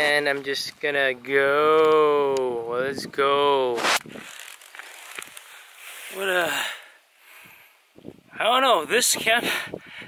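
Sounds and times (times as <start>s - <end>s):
camera handling noise: 3.8s - 5.5s
rain jacket rustling: 3.8s - 6.1s.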